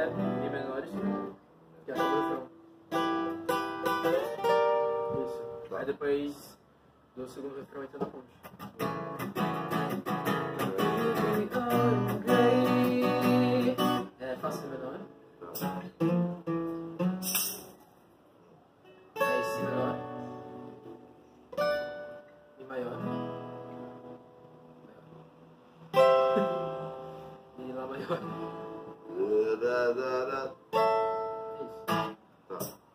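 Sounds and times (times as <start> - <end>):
acoustic guitar strumming: 0.0 - 5.8, 8.4 - 17.8, 18.9 - 32.9.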